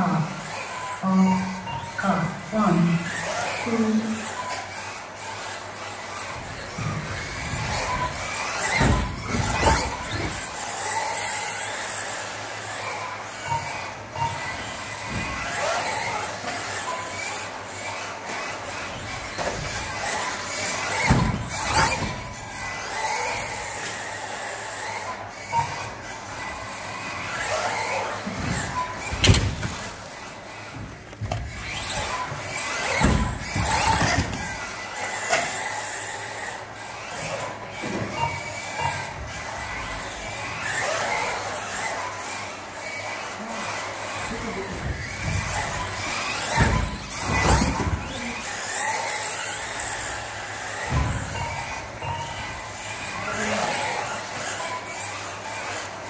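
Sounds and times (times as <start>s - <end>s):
electric motor and gear whine: 0.0s - 56.0s.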